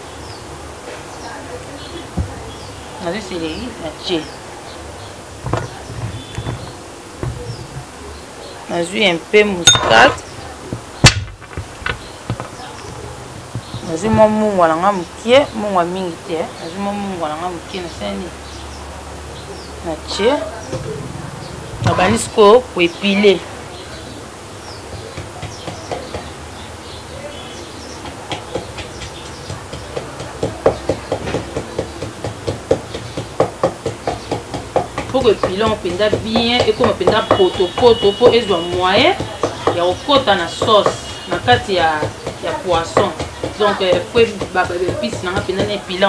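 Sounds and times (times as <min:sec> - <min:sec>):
kitchen utensils knocking: 0:09.6 - 0:10.4, 0:29.5 - 0:46.0
pestle pounding in mortar: 0:09.7 - 0:14.6, 0:24.9 - 0:26.4, 0:28.0 - 0:46.0.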